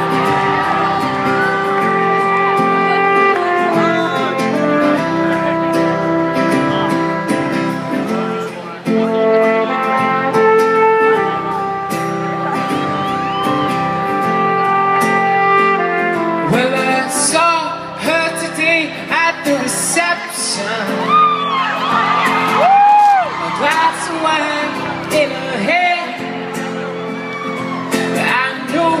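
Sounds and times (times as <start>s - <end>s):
faint crowd voices: 0.0s - 29.0s
live rock band playing: 0.0s - 29.0s.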